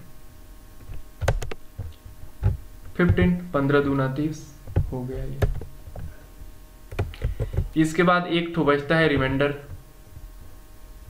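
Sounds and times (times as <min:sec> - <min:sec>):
low steady hum: 0:00.0 - 0:11.0
keyboard and mouse clicks: 0:00.8 - 0:03.2, 0:04.7 - 0:06.1, 0:06.9 - 0:07.7.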